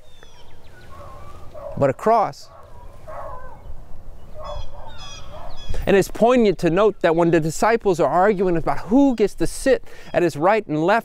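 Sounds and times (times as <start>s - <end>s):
low wind rumble: 0.0s - 10.0s
birds calling: 0.0s - 11.0s.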